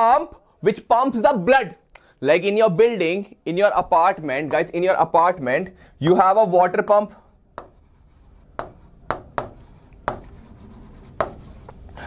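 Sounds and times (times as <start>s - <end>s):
pen scraping on screen: 7.2s - 11.9s
pen tapping on screen: 7.5s - 11.8s.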